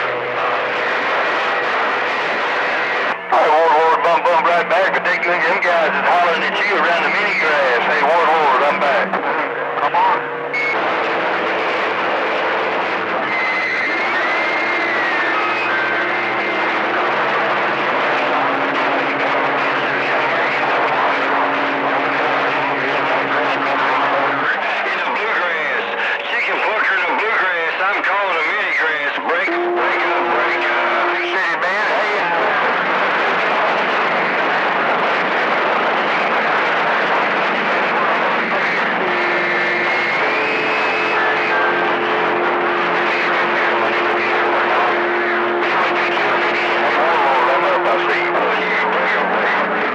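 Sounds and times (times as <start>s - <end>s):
garbled radio voices: 0.0s - 49.9s
radio static: 0.0s - 49.9s
heterodyne whistles: 39.2s - 41.5s.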